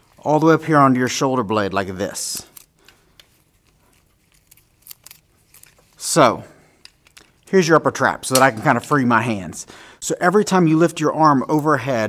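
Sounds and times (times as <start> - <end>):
tape clicks and crackles: 2.4 - 6.0, 6.7 - 7.5.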